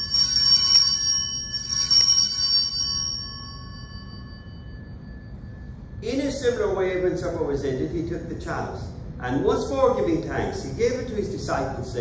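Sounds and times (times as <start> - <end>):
altar bells ringing: 0.0 - 6.0.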